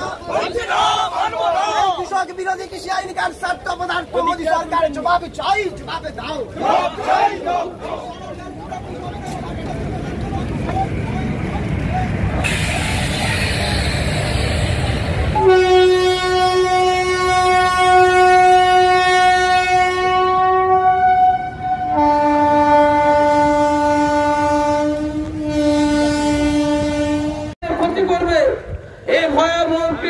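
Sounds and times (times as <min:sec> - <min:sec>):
train horn blasts: 0:15.3 - 0:27.6.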